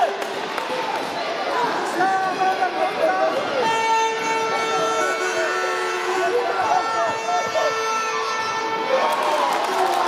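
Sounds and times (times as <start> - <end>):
children shouting: 0.7 - 10.0
horn long steady note: 3.3 - 9.5.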